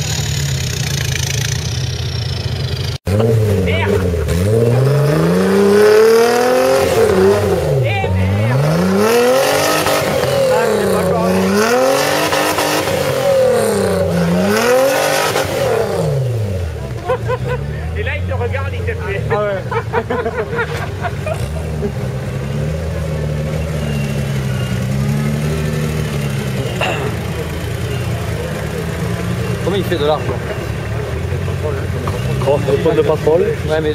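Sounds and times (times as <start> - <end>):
buggy engine revving: 0.0 - 33.9.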